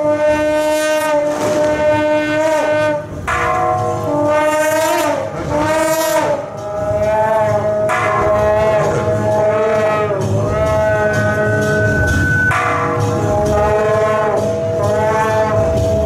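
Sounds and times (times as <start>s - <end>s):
shawm playing nasal melody: 0.0s - 16.0s.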